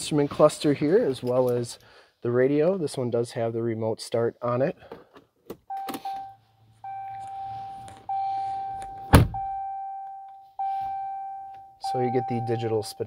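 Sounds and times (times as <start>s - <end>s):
loud thunk: 9.1s - 9.4s.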